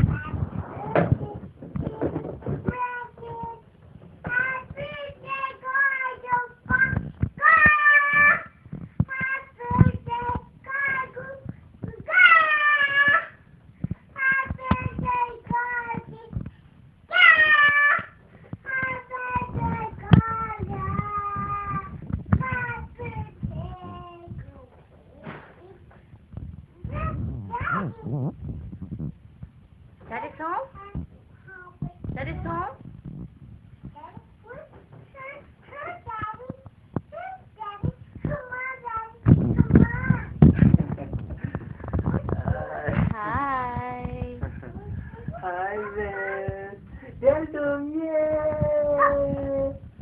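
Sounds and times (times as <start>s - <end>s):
young child singing: 4.3s - 13.4s, 14.2s - 16.4s, 37.2s - 40.4s.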